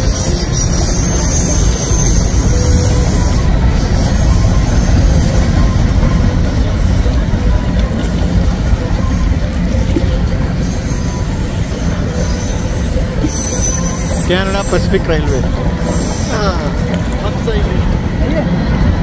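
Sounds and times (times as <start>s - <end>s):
wheel squeals: 0.0s - 17.4s
train wheels rumbling on rails: 0.0s - 19.0s.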